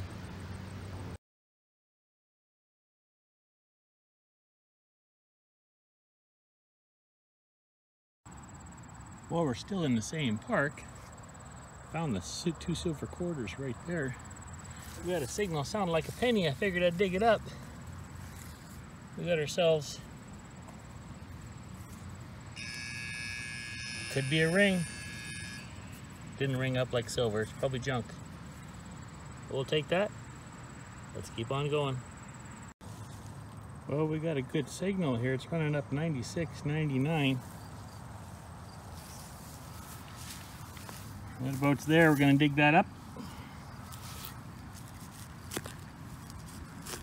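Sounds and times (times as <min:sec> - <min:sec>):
faint outdoor background: 0:00.0 - 0:01.2, 0:08.3 - 0:47.0
steady high buzz: 0:13.3 - 0:32.7
hand digger scraping soil: 0:18.1 - 0:18.9, 0:43.8 - 0:47.0.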